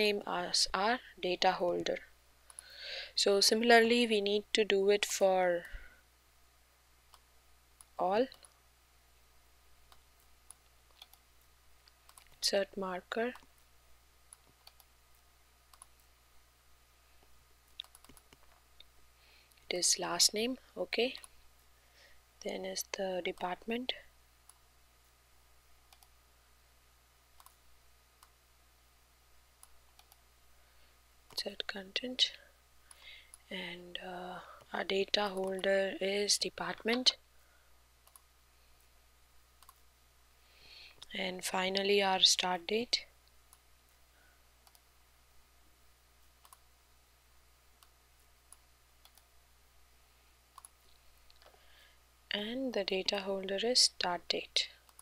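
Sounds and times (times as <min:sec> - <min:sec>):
computer mouse clicks: 0:02.5 - 0:02.7, 0:07.1 - 0:08.6, 0:09.9 - 0:11.2, 0:11.8 - 0:12.4, 0:14.3 - 0:16.1, 0:17.7 - 0:18.9, 0:25.9 - 0:26.2, 0:27.4 - 0:27.6, 0:29.6 - 0:30.2, 0:38.0 - 0:38.3, 0:39.6 - 0:39.8, 0:44.6 - 0:44.9, 0:46.4 - 0:46.7, 0:47.8 - 0:49.3, 0:50.5 - 0:51.6.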